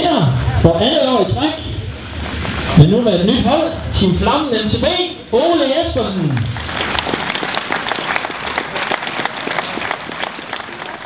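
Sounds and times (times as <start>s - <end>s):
audience applauding: 6.2s - 11.0s
individual hand claps: 6.3s - 11.0s.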